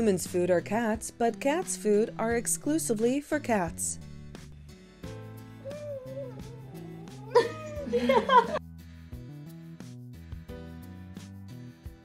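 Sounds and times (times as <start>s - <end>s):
cat meowing: 5.6s - 8.4s.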